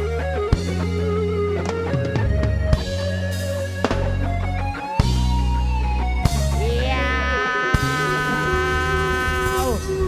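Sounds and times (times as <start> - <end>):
low bass note: 6.5 - 10.0
band holding buzzing chord: 6.6 - 9.9.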